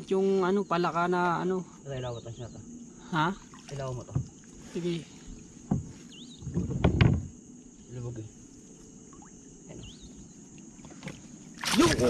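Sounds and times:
water splashing: 3.3s - 7.0s, 10.6s - 12.0s
wet net hauled over boat: 3.4s - 7.3s, 10.7s - 12.0s
knocks against boat side: 5.6s - 7.3s.

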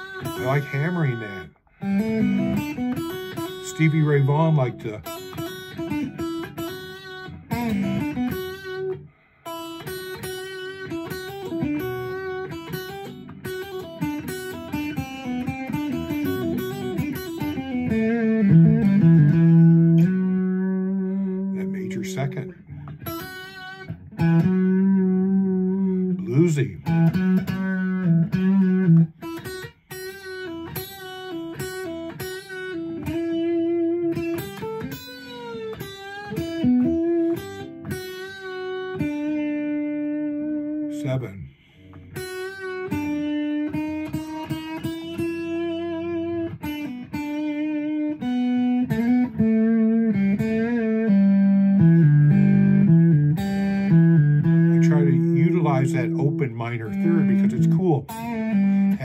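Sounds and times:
electric guitar blues licks: 0.0s - 59.0s.

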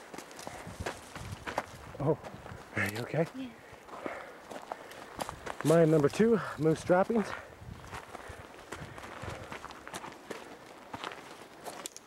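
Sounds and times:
footsteps on stony ground: 0.0s - 12.0s.

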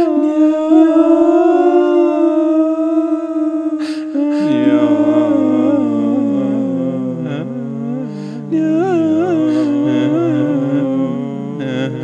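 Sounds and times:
voices holding sustained notes: 0.0s - 12.0s
breathy noise: 3.8s - 12.0s.

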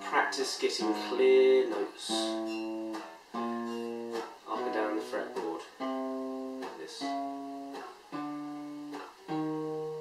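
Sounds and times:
acoustic guitar plucked notes: 0.0s - 10.0s
guitar string noise: 0.0s - 10.0s.

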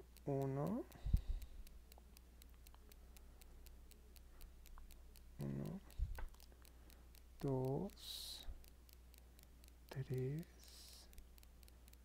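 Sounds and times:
faint ticks: 0.0s - 12.0s
low steady hum: 0.0s - 12.0s.

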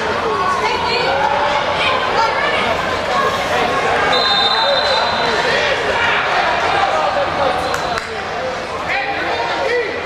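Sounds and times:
chatter of players and spectators: 0.0s - 10.0s
referee's whistle: 4.1s - 5.3s.

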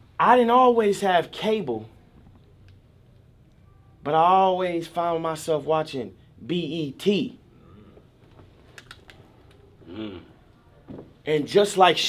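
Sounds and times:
murmuring voice: 9.8s - 10.6s.

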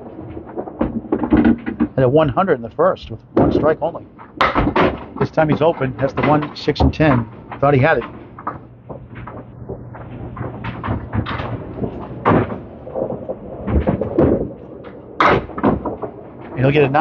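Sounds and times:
bowling balls and pins clattering: 0.0s - 17.0s.

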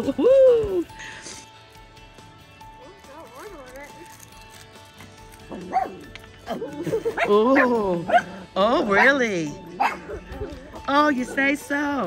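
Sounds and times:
background music: 0.0s - 12.0s
puppy yipping: 5.5s - 6.6s.

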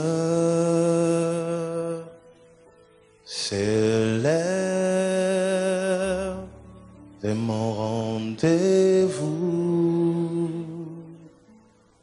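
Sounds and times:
man singing gospel: 0.0s - 2.2s, 3.3s - 11.4s.

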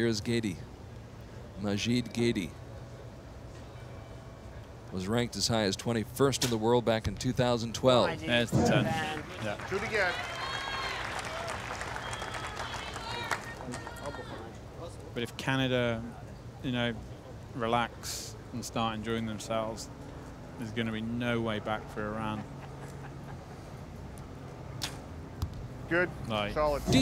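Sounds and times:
bowstring release crack: 24.8s - 25.0s.

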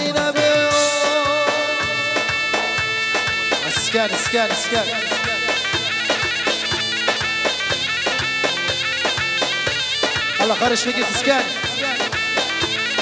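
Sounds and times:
steady driving drum beat: 0.0s - 13.0s
reedy wind instrument melody: 0.4s - 13.0s.

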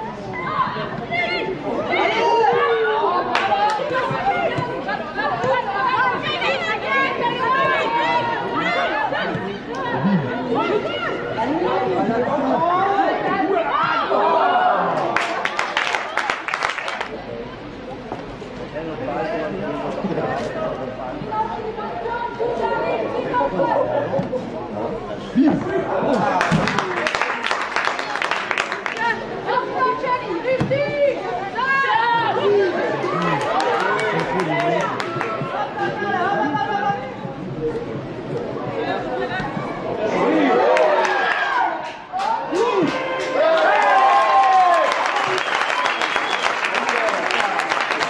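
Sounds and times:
crowd chattering and calling out: 0.0s - 48.0s
overlapping voices calling out: 26.0s - 37.4s.

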